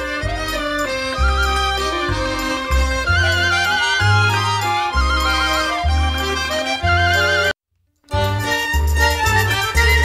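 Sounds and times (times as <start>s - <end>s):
folk dance music: 0.0s - 10.0s.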